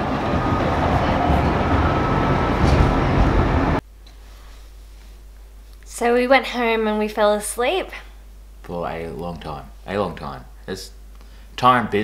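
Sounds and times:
tram rumbling: 0:00.0 - 0:03.8.

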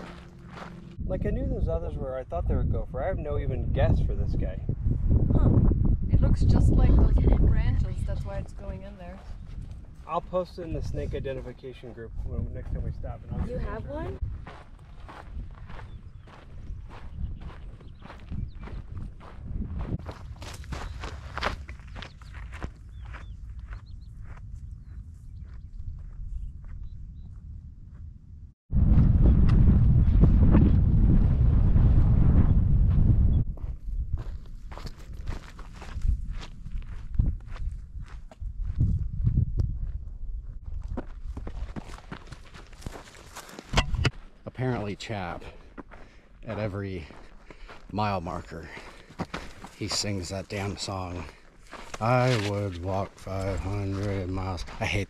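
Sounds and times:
footsteps on dirt trail: 0:00.0 - 0:01.0, 0:06.8 - 0:11.6, 0:12.2 - 0:27.4, 0:32.9 - 0:55.0
loud low rumble: 0:00.0 - 0:03.0, 0:28.7 - 0:33.6.

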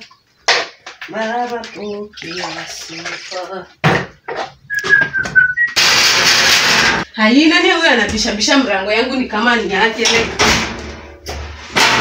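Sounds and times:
water poured into plastic cup: 0:01.8 - 0:03.7.

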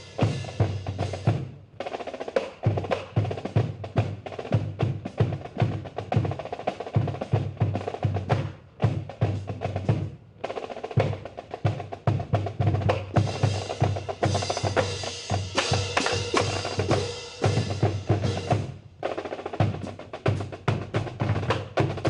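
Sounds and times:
rolling snare drums: 0:00.0 - 0:22.0
bass drum beat: 0:11.0 - 0:18.8.

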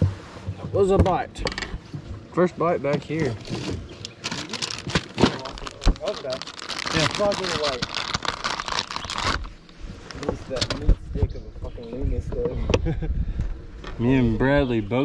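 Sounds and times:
dull thumps: 0:00.0 - 0:02.2
plastic package crinkling: 0:04.1 - 0:09.6.

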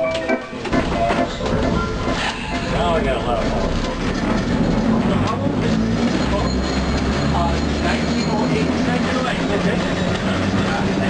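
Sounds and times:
electric railcar running on rails: 0:00.0 - 0:11.0.

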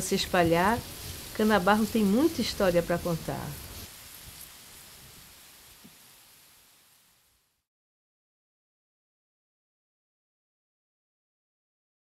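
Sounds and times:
faint steady hiss: 0:00.0 - 0:07.7
light crackles: 0:00.0 - 0:07.7.

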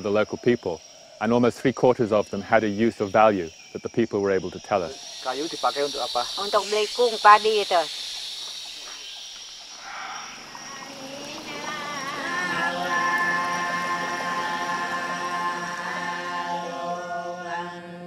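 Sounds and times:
insects droning: 0:00.0 - 0:18.0
chanted vocal drone: 0:10.0 - 0:18.0.

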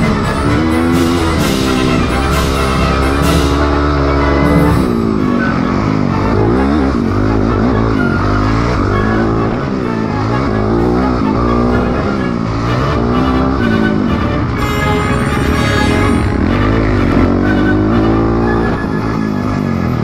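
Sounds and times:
background music: 0:00.0 - 0:20.0
dirt bike engines revving: 0:00.0 - 0:20.0.

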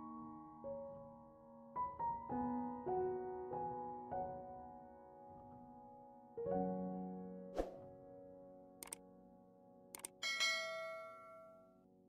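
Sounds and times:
soft background music: 0:00.0 - 0:12.0
mouse double-click: 0:08.8 - 0:09.0, 0:10.0 - 0:10.2
bright bell ding: 0:10.2 - 0:11.8.

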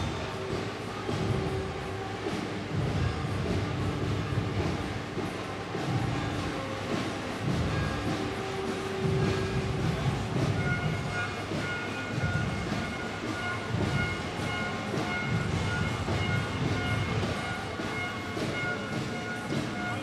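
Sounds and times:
faint music: 0:00.0 - 0:20.0
low rumble of street parade: 0:00.0 - 0:20.0.

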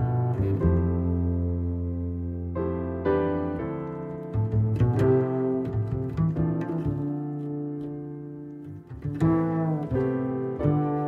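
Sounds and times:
piano chords: 0:00.0 - 0:11.0
plucked double bass: 0:00.0 - 0:11.0.

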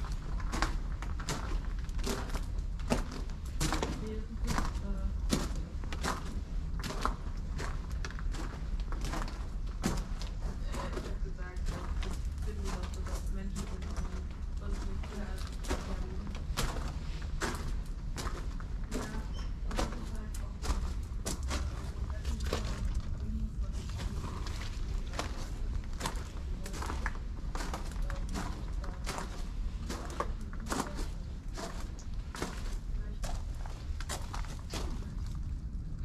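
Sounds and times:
footsteps crunching on gravel: 0:00.0 - 0:35.4
steady low rumble: 0:00.0 - 0:36.0.

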